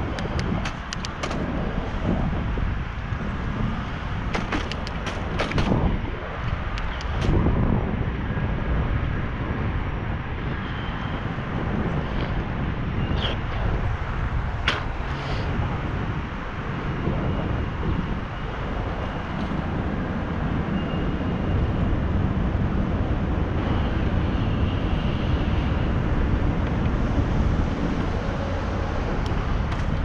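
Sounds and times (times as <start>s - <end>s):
wind rushing over microphone: 0.0s - 30.0s.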